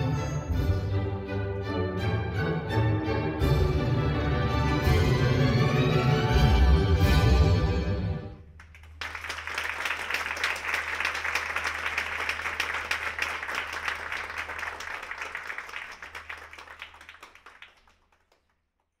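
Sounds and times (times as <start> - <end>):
audience applauding: 8.5 - 18.9.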